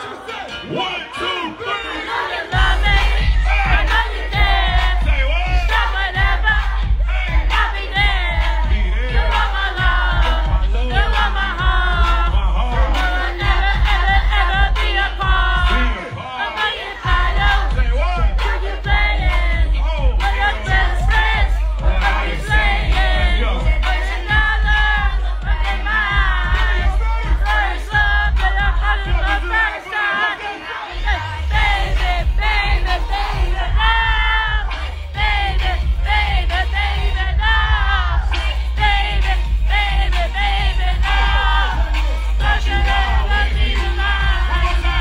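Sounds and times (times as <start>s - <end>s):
crowd shouting and singing: 0.0s - 45.0s
heavy bass beat: 0.0s - 45.0s
hip-hop music over loudspeakers: 0.0s - 45.0s.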